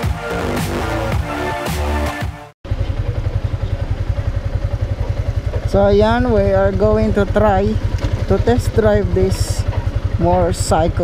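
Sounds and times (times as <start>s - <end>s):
background music: 0.0s - 2.5s
motorcycle engine idling: 2.6s - 11.0s.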